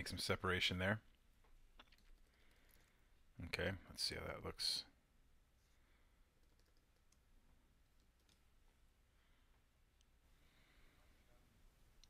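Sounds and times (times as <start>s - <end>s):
computer mouse and key clicks: 1.7s - 2.9s, 6.4s - 8.6s.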